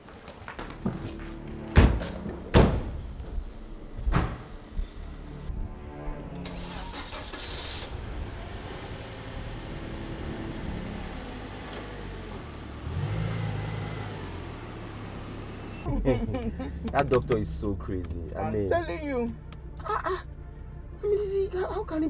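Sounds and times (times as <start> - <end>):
car engine starting and running: 6.1 - 22.0.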